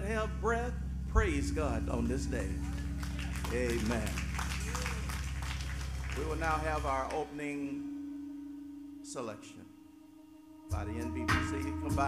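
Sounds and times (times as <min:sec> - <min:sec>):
low keyboard chord: 0:00.0 - 0:12.0
congregation clapping: 0:02.6 - 0:07.3.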